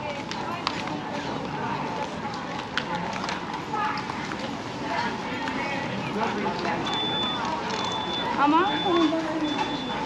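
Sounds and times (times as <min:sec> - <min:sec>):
busy pedestrian street noise: 0:00.0 - 0:10.0.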